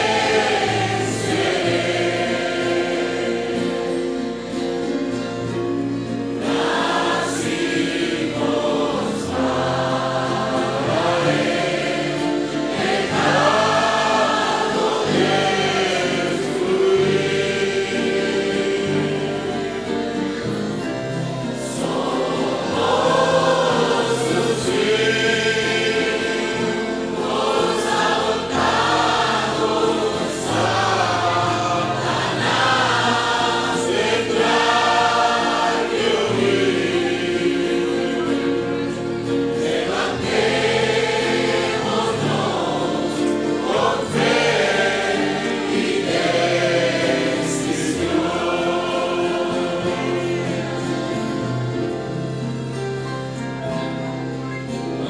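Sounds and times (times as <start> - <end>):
congregation singing a hymn: 0.0 - 55.0.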